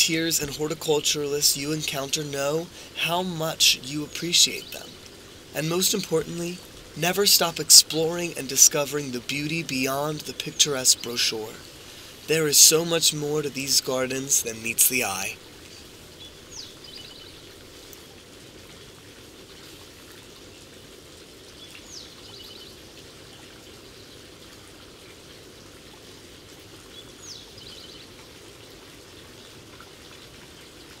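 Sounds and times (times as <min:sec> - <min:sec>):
soft steady hiss: 0:00.0 - 0:31.0.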